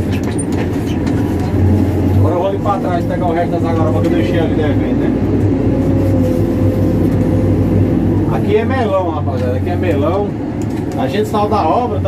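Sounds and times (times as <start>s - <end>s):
diesel engine droning: 0.0s - 12.0s.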